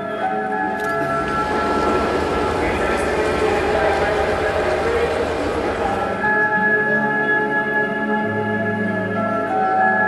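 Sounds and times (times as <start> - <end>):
held music tones: 0.8 - 7.0
train pulling away rumbling: 0.8 - 7.2.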